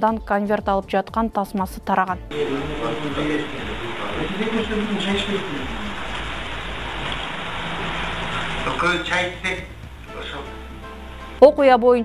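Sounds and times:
faint low hum: 2.3 - 10.2
recording hiss: 2.3 - 11.5.

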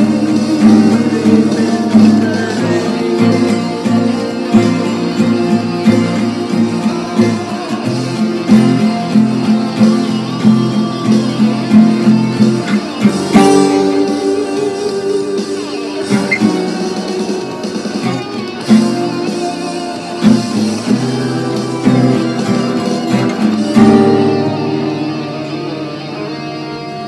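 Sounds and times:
acoustic guitar picking: 0.0 - 27.0
ringing guitar chord: 0.0 - 27.0.

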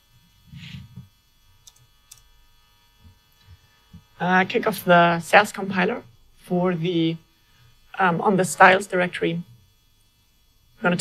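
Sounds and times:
computer keyboard keystrokes: 1.6 - 2.3.

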